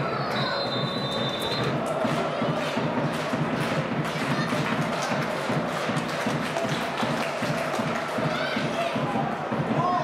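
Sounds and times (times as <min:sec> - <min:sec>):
stadium crowd noise: 0:00.0 - 0:10.0
referee's whistle blast: 0:00.4 - 0:01.7.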